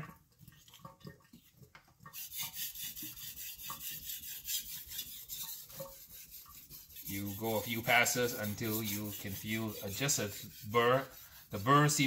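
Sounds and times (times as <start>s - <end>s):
knife rasping on whetstone: 2.2s - 12.0s.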